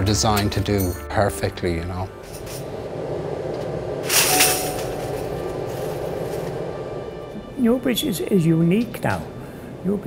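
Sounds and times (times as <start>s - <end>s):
soft background music: 0.0s - 2.9s, 4.1s - 10.0s
furnace flames rumbling: 0.0s - 10.0s
wire basket scraping metal: 4.0s - 6.6s.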